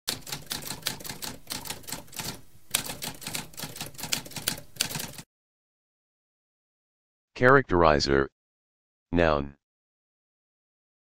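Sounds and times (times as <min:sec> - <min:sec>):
typewriter keys clicking: 0:00.1 - 0:05.2.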